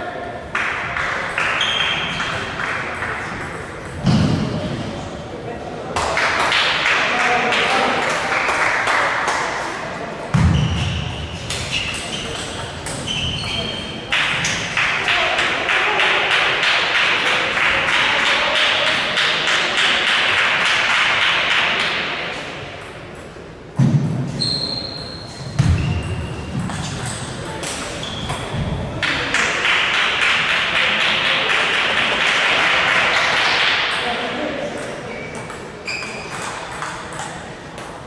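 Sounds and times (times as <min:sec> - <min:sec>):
table tennis balls clicking: 0:34.7 - 0:38.0.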